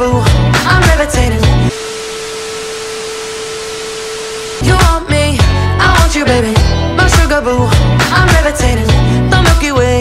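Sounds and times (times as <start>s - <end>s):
television static hiss: 1.7s - 4.6s
steady tone: 1.7s - 5.0s.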